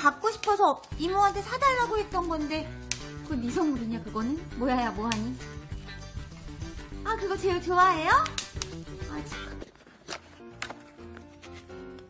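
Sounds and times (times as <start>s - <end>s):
background music: 0.0s - 12.0s
bubble wrap crackling: 7.8s - 12.0s.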